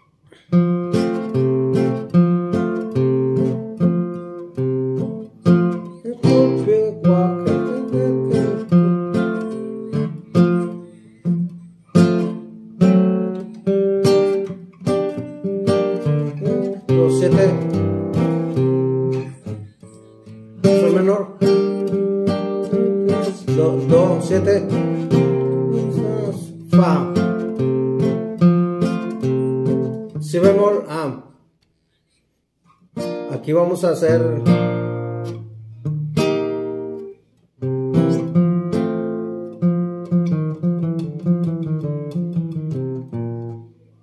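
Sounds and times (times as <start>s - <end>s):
classical guitar playing: 0.0s - 31.2s, 32.8s - 44.0s.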